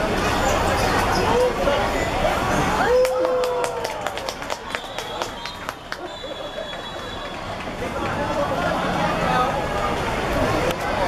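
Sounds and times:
light crowd noise: 0.0s - 11.0s
people clapping: 2.8s - 8.7s.

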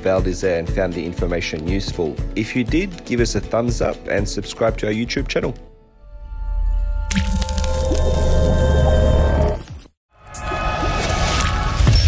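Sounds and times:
liquid drip and squish effect: 7.1s - 8.7s.

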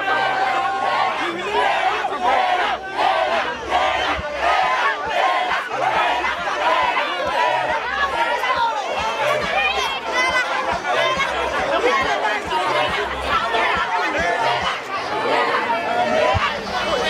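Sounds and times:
crowd talking and shouting: 0.0s - 17.0s.

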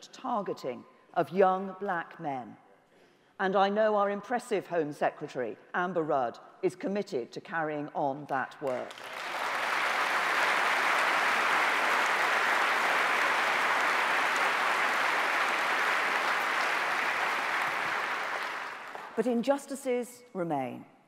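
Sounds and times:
audience applauding: 8.7s - 19.2s.

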